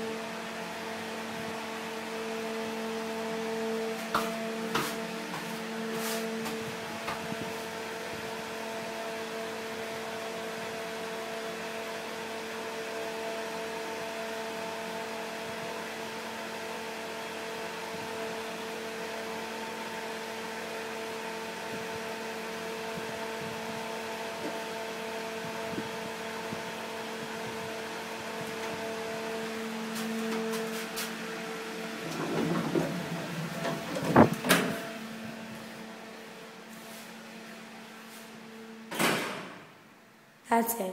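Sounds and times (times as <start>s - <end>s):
elevator hum: 21.5s - 40.4s.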